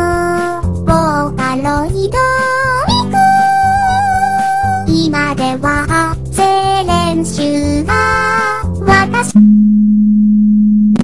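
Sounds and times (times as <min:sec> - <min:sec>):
person singing: 0:00.0 - 0:09.4
low electronic beep: 0:09.4 - 0:11.0.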